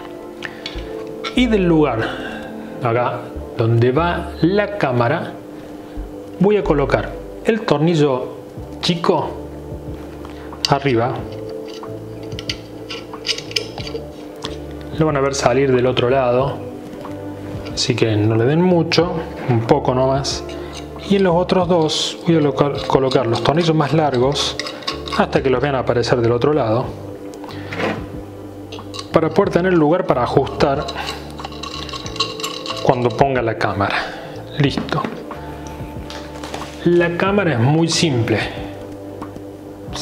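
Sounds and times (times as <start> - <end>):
soft background music: 0.0 - 40.0
metal screws rubbing and clicking: 11.3 - 14.7, 23.5 - 25.3, 30.5 - 33.2.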